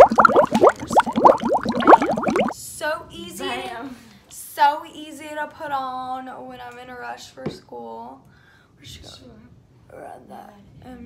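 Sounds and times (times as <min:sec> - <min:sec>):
rapid bubbling plops: 0:00.0 - 0:02.6.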